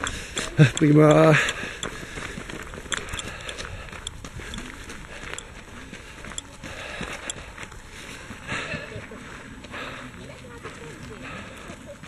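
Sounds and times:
running footsteps on gravel: 0.0s - 12.0s.

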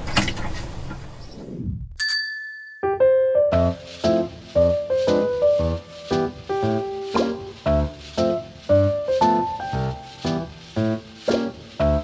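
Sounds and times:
bright chime ringing: 2.0s - 3.0s
keyboard tune: 2.8s - 11.2s.

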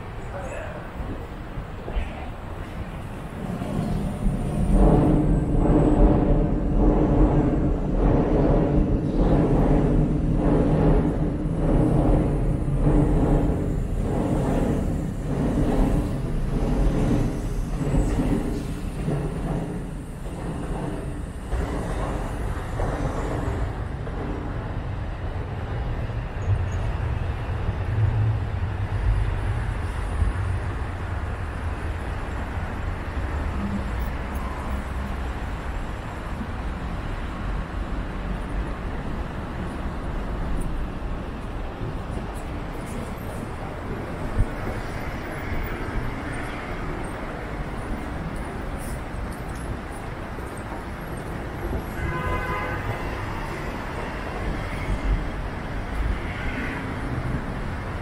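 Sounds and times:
street traffic rumble: 0.0s - 58.0s
train wheels clacking on rails: 1.9s - 25.1s.

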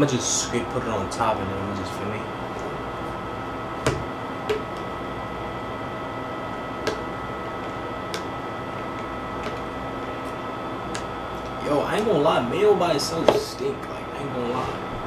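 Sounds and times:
room hum: 0.0s - 15.0s.

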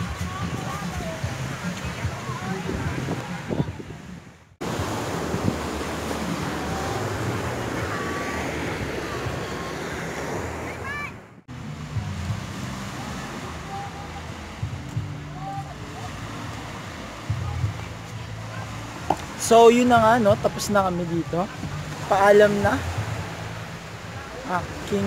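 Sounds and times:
wind on microphone: 0.0s - 19.4s
small waves washing on sand: 0.0s - 25.0s.

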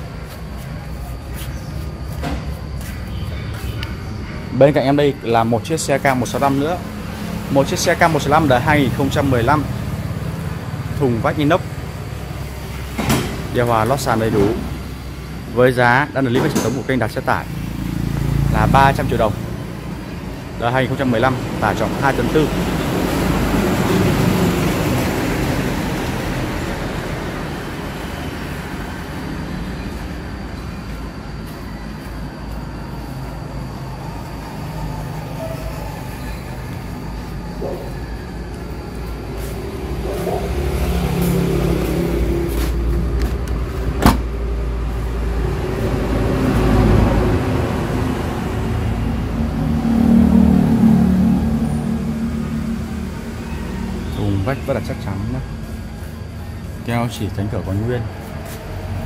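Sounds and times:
vehicles passing: 0.0s - 59.0s.

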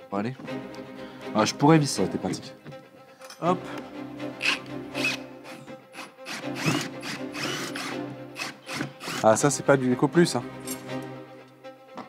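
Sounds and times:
cordless drill running: 4.4s - 9.2s.

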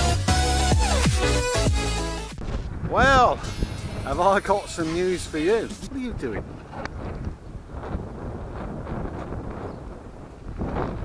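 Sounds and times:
wind buffeting microphone: 2.4s - 11.0s.

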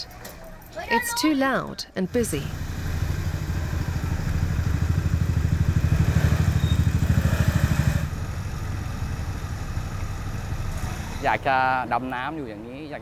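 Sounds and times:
motorcycle engine running: 2.1s - 11.2s.

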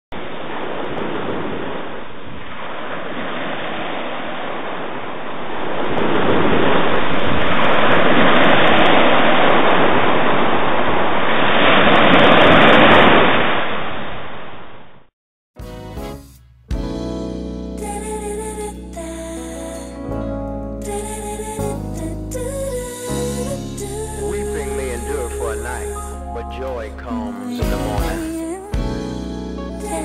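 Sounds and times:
ocean waves breaking: 0.2s - 13.8s.

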